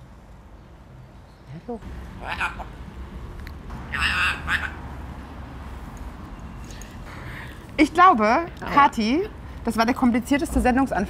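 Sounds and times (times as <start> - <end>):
parrot calling harshly: 2.2 - 2.8, 3.9 - 4.9.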